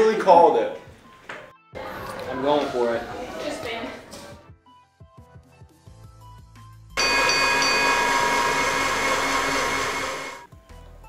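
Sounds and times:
electric blender motor running: 7.0s - 10.5s.

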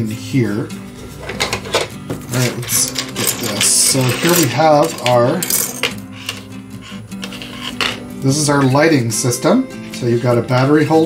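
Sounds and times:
soft background music: 0.0s - 11.0s
handling plastic model parts: 1.2s - 6.5s.

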